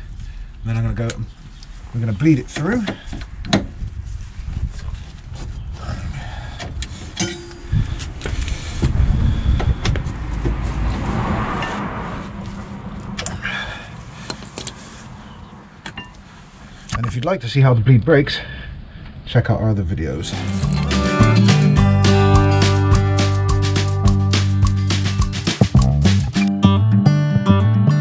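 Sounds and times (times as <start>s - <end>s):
low rumble: 7.4s - 14.2s.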